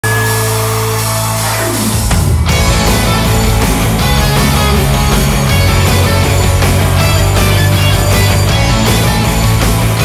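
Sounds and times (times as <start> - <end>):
steady higher tones: 0.0 - 10.0.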